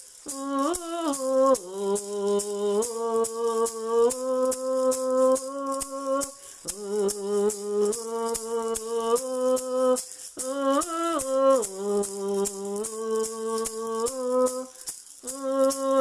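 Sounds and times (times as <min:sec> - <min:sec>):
maraca shaking: 0:00.0 - 0:16.0
woman singing: 0:00.2 - 0:16.0.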